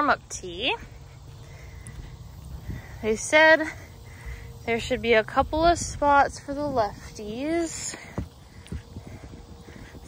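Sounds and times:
wind rumble on microphone: 1.9s - 10.0s
footsteps on turf: 4.8s - 10.0s.

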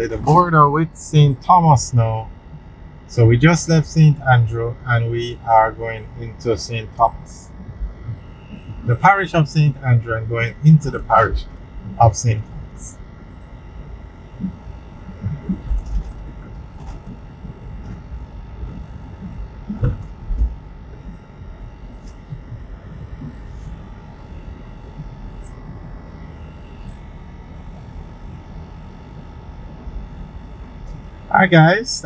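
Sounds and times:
faint constant hum: 0.0s - 32.0s
road and engine rumble: 0.0s - 32.0s
low thumps: 2.0s - 31.7s.

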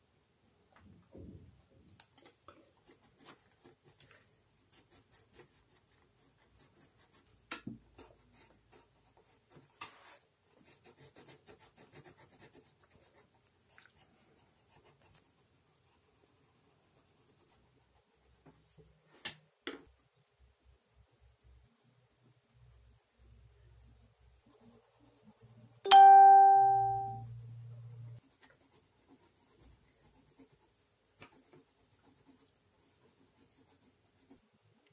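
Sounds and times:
pencil scratching on paper: 2.5s - 13.4s, 14.0s - 19.0s, 19.8s - 34.6s.

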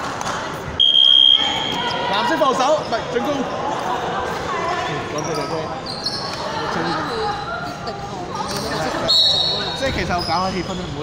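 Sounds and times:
voices in echoing hall: 0.0s - 11.0s
sneaker squeaks: 5.2s - 7.5s, 8.5s - 11.0s.

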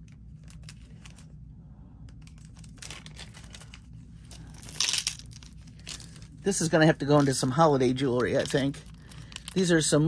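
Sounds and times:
plastic packaging crinkling: 2.2s - 10.0s
glass beads clattering into tray: 4.6s - 6.1s.

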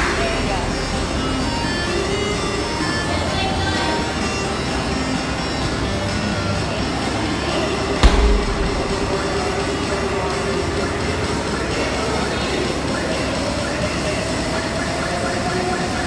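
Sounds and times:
medicine ball thud on floor: 8.0s - 9.4s.

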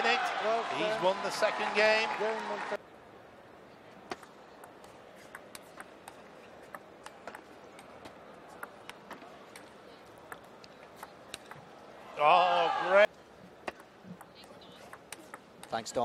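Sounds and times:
table tennis ball clicking: 4.1s - 9.7s, 10.3s - 11.7s, 13.6s - 15.9s.

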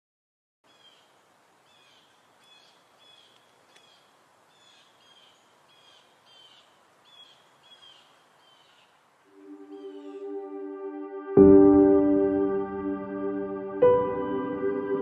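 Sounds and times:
bird chirping: 0.7s - 10.5s
steady soft hiss: 0.7s - 11.3s.

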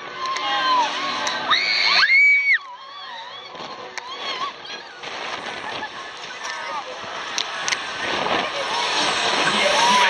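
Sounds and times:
voices shouting: 0.0s - 5.0s
fairground ride rushing: 0.0s - 10.0s.

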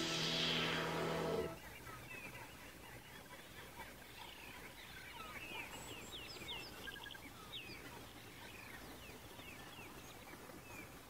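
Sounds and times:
low steady hiss: 0.0s - 2.0s.

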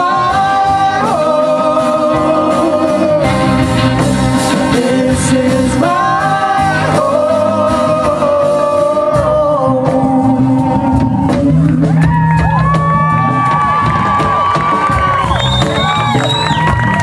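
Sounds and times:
live band playing: 0.0s - 17.0s
whoops and cheering: 10.4s - 17.0s.

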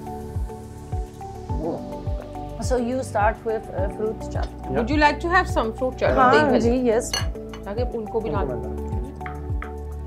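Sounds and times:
background music with steady beat: 0.0s - 10.0s
metal spoon clinking on glass bowl: 7.1s - 7.7s.

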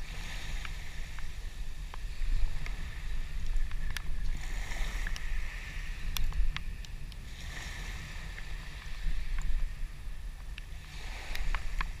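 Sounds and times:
small waves washing onto sand: 0.0s - 12.0s
wind buffeting microphone: 0.0s - 12.0s
faint clicks: 3.4s - 4.3s, 5.0s - 5.3s, 6.1s - 7.2s.

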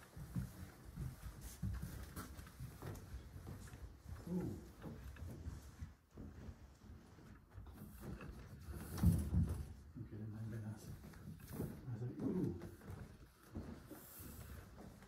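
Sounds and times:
footsteps and shuffling: 0.0s - 15.0s.

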